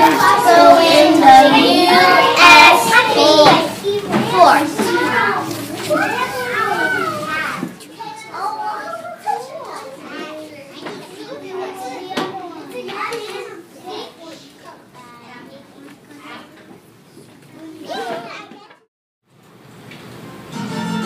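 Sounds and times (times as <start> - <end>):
young children chattering: 0.0 - 18.9.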